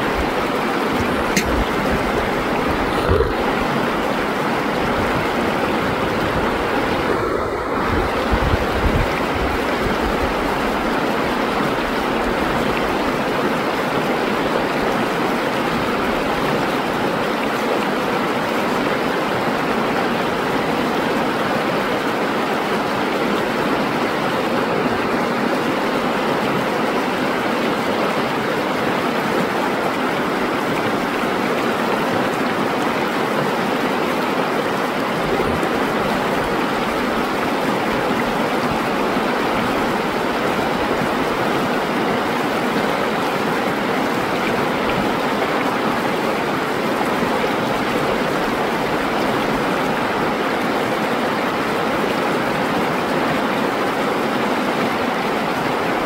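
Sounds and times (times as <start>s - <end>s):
river rushing over rocks: 0.0s - 56.0s.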